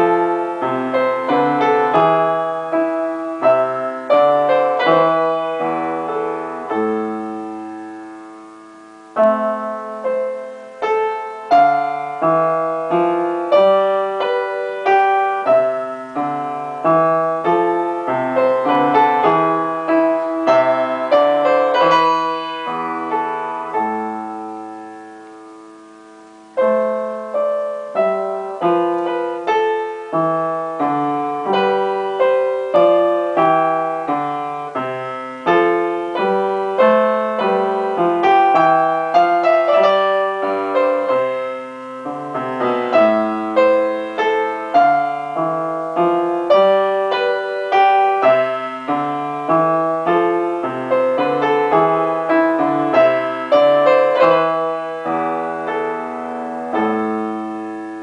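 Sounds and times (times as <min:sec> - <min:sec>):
upright piano playing: 0:00.0 - 0:58.0.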